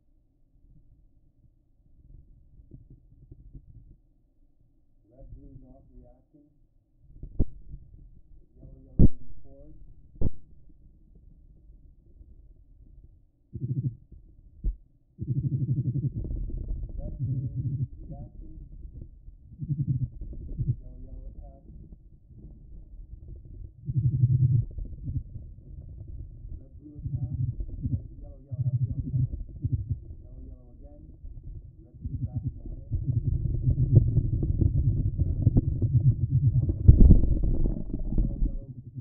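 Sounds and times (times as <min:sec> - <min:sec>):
spider vibration buzzing pulses: 0:31.9 - 0:39.0.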